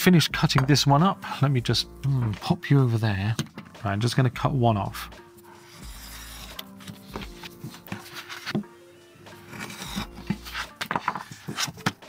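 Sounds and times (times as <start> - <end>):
background music: 0.0 - 12.0
blade cutting paper card: 5.6 - 8.5, 9.4 - 11.9.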